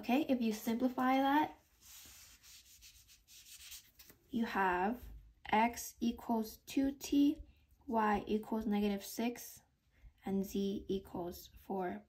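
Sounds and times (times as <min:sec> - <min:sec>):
eraser rubbing whiteboard: 0:01.6 - 0:04.1.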